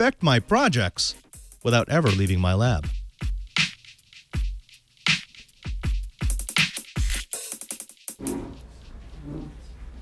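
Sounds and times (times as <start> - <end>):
electronic background music: 0.0 - 8.8.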